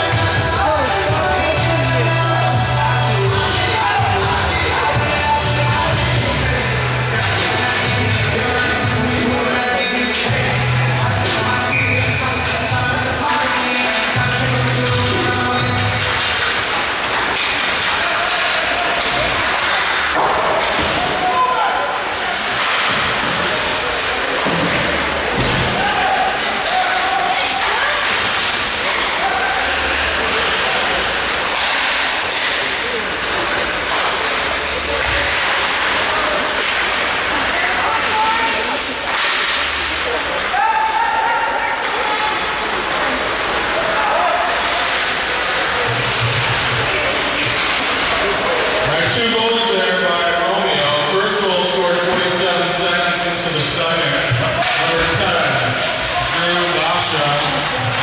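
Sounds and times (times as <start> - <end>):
hockey sticks hitting puck: 0.0 - 58.0
hubbub of spectators: 0.0 - 58.0
thuds against rink boards: 16.1 - 21.4, 22.4 - 27.0.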